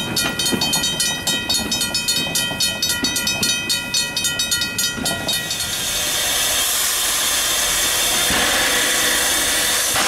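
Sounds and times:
level-crossing alarm bell ringing: 0.0s - 6.0s.

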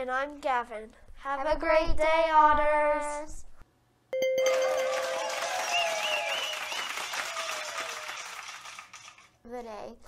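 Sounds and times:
crowd applause and cheering: 4.2s - 9.3s
warbling whistle: 4.4s - 7.5s.

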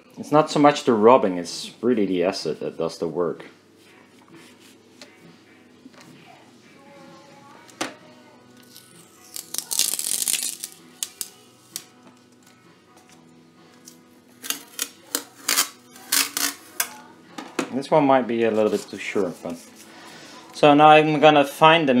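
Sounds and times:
faint background music: 0.0s - 22.0s
masking tape peeling: 8.6s - 11.9s, 14.3s - 17.0s.

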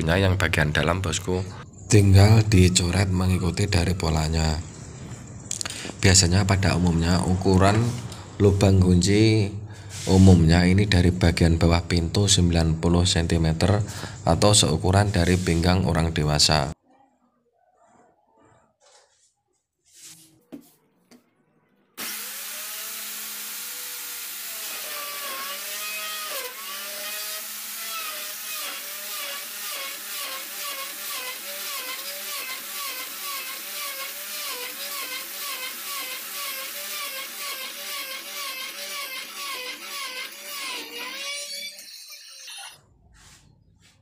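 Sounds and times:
electric router cutting wood: 22.0s - 41.5s.

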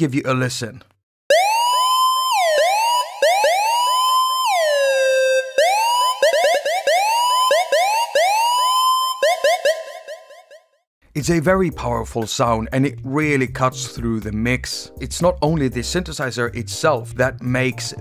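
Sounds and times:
synth siren swooping in pitch: 1.3s - 10.4s.

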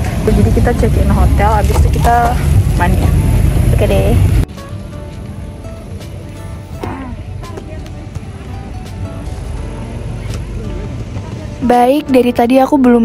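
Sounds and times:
soft background music: 0.1s - 13.0s.

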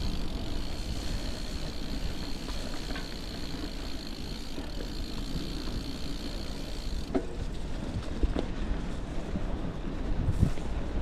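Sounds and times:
bike tyres rumbling on dirt: 0.0s - 11.0s
grit clicking under tyres: 0.0s - 11.0s
wind across microphone: 6.5s - 11.0s.

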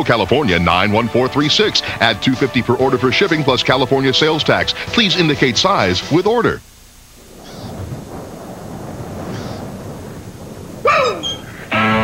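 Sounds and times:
wind rushing: 7.1s - 11.8s.

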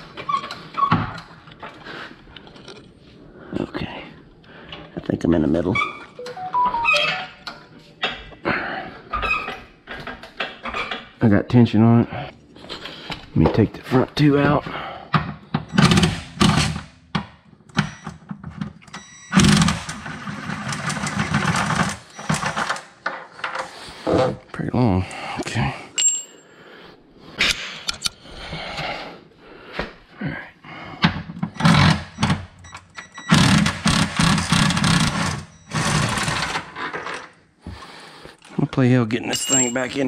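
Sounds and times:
power wrench running: 19.3s - 22.6s, 31.6s - 32.4s, 33.3s - 36.6s.

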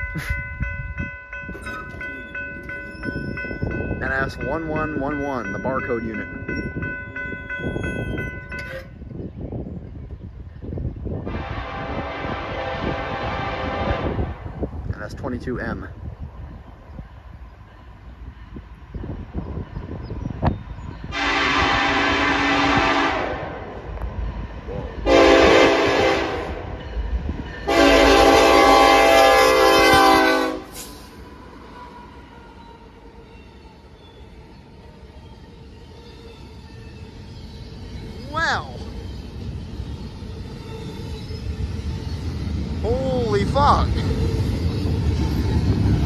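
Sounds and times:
high ringing chord of tones: 0.0s - 9.0s
train locomotive rumble: 0.0s - 46.0s
locomotive air horn blasts: 11.2s - 14.4s, 21.1s - 23.6s, 25.0s - 26.6s, 27.7s - 30.9s.

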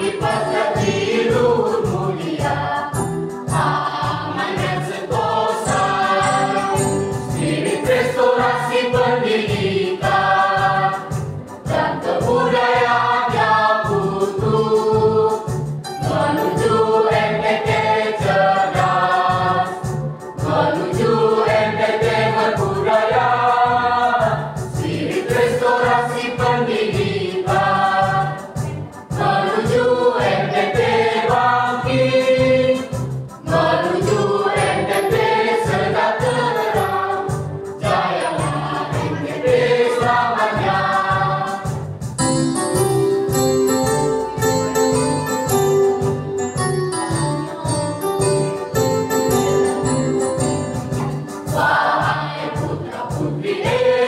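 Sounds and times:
mixed choir singing: 0.0s - 41.9s, 51.4s - 54.0s.

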